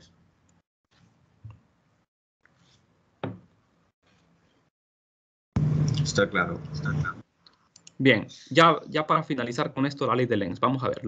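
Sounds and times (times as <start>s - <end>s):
dull knock: 3.2s - 3.5s.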